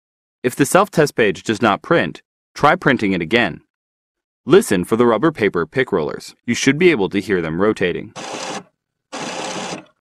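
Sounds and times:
printer rollers rotating: 0:08.2 - 0:10.0.

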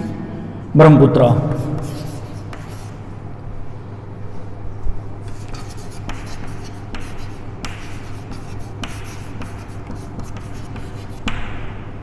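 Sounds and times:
steady low hum: 0:00.0 - 0:12.0
chalk writing on chalkboard: 0:01.5 - 0:03.0, 0:05.2 - 0:11.6.

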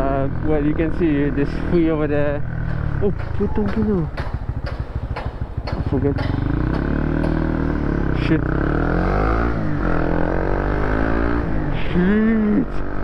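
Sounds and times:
motorcycle engine accelerating: 0:00.0 - 0:13.0.

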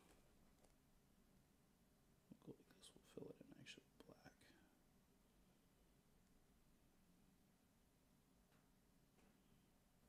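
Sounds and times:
faint whispered speech: 0:02.3 - 0:04.8.

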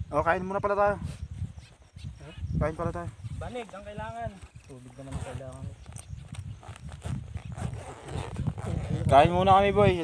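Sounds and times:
wind buffeting microphone: 0:00.0 - 0:10.0
backpack rustling: 0:04.4 - 0:09.2.

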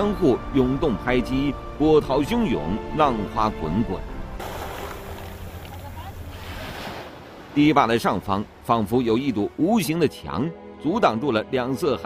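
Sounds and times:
waves washing over gravel: 0:04.4 - 0:07.8.

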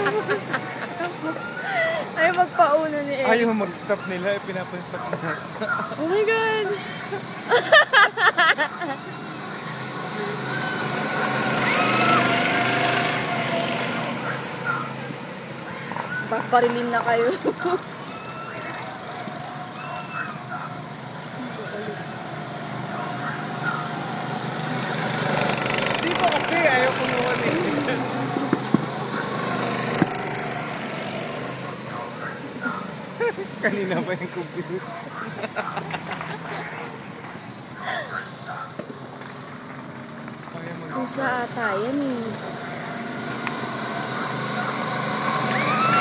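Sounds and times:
excited voices: 0:00.0 - 0:04.2, 0:11.5 - 0:15.1, 0:17.2 - 0:22.2
go-kart engine passing: 0:00.0 - 0:46.0.

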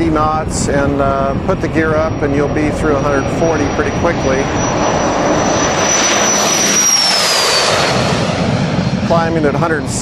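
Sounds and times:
jet taking off and passing: 0:00.0 - 0:10.0.

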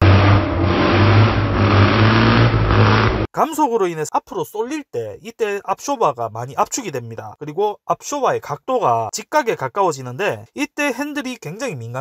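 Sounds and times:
rally car engine revving hard: 0:00.0 - 0:03.3.

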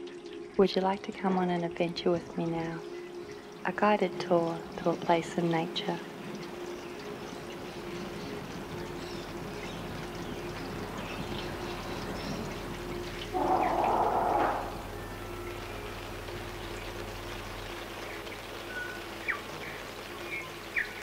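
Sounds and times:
trickling water: 0:00.0 - 0:21.0
water gushing: 0:00.0 - 0:21.0
faint steady hum: 0:00.2 - 0:21.0
short bird calls: 0:13.3 - 0:15.0.

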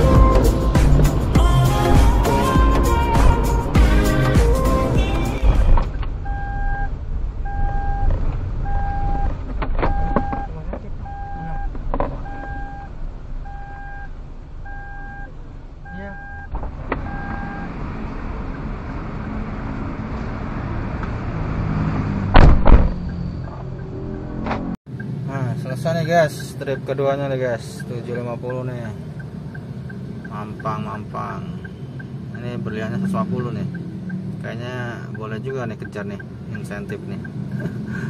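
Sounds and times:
engine and road hum: 0:00.0 - 0:38.0
car warning chime beeping: 0:06.2 - 0:09.3, 0:09.9 - 0:17.7, 0:24.9 - 0:32.7, 0:34.9 - 0:37.6
loud thump: 0:22.3 - 0:23.0.

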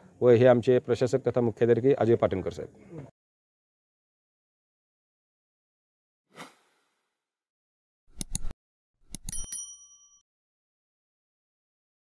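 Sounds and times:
quick clicks: 0:08.1 - 0:08.5
bright bell ding: 0:09.2 - 0:10.2.

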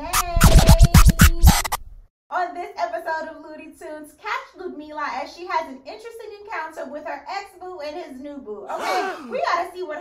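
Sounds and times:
turntable record scratching: 0:00.0 - 0:01.9.

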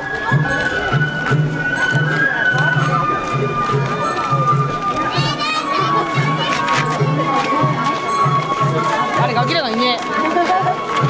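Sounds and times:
crowd voices: 0:00.0 - 0:11.0
taiko drum beating: 0:00.2 - 0:11.0.

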